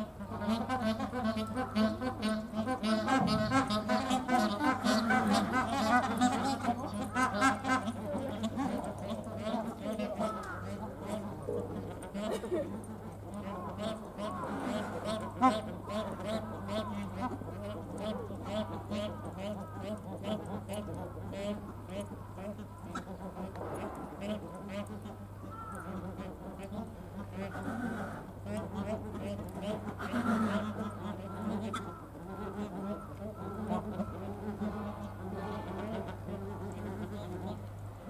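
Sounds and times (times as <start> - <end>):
geese honking: 0.0 - 38.0
steady low buzz: 0.0 - 38.0.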